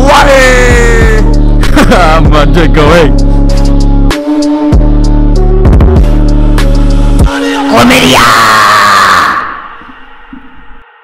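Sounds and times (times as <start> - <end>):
loud high-pitched scream: 7.4 - 9.7.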